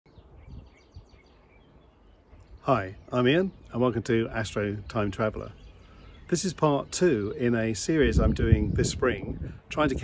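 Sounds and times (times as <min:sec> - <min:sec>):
birds chirping: 0:00.1 - 0:10.0.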